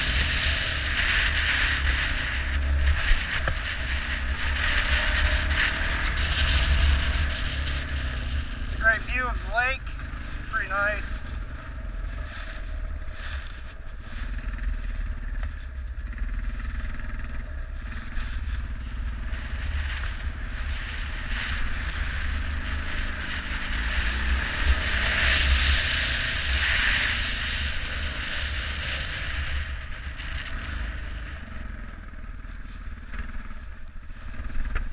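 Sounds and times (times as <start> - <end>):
dirt bike engine running: 0.0 - 34.9
road noise: 0.0 - 34.9
wind rumbling on microphone: 0.0 - 34.9.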